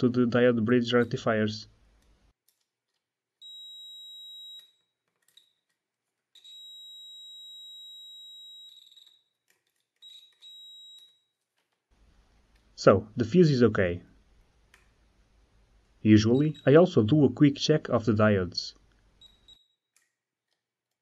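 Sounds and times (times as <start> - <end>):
multimeter continuity beeps: 3.4 - 4.8, 6.4 - 9.2, 10.0 - 11.3, 16.1 - 17.0, 19.2 - 19.8
faint probe clicks: 14.4 - 15.0.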